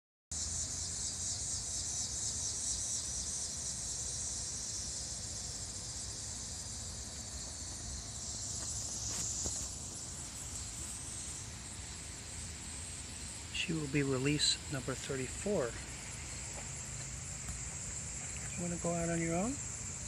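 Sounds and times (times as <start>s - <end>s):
insects trilling: 0.3s - 20.0s.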